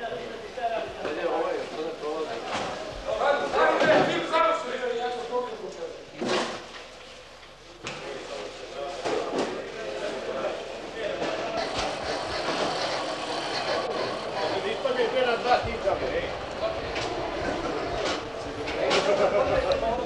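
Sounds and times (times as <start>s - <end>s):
indistinct background voices: 7.0s - 20.0s.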